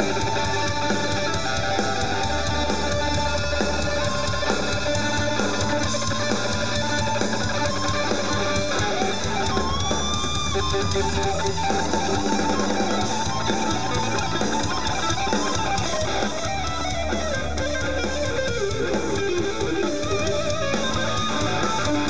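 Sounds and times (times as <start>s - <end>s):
bass guitar: 0.0s - 22.0s
drum kit: 0.0s - 22.0s
electric guitar lead: 0.0s - 22.0s.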